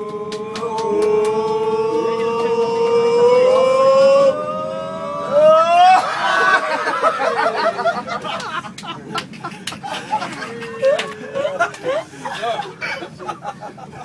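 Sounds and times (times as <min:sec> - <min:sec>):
men shouting long rising note: 0:00.0 - 0:06.9
men laughing and chattering: 0:00.1 - 0:14.0.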